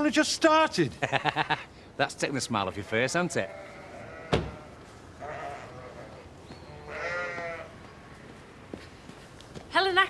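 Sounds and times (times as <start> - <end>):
sheep bleating: 2.7 - 7.7.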